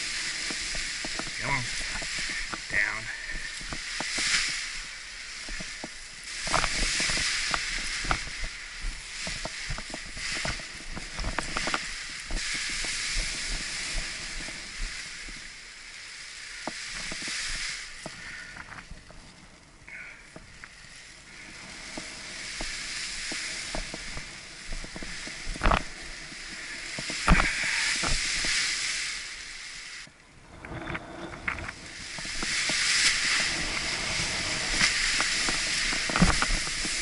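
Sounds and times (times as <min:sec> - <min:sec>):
paraglider wing knocks and rustles: 0:00.0 - 0:15.6, 0:16.6 - 0:19.3, 0:21.4 - 0:28.9, 0:30.7 - 0:37.0
wind hissing on microphone: 0:00.0 - 0:37.0.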